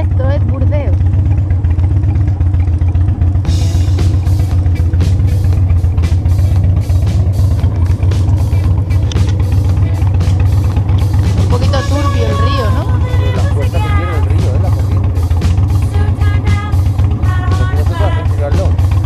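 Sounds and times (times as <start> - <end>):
motorcycle engine running: 0.0 - 19.0
drum beat: 3.4 - 19.0
music playing: 3.5 - 19.0.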